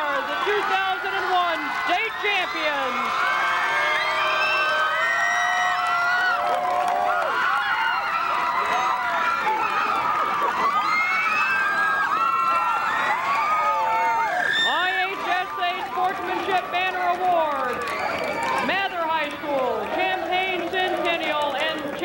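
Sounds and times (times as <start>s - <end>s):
girls screaming and cheering: 0.0s - 16.7s.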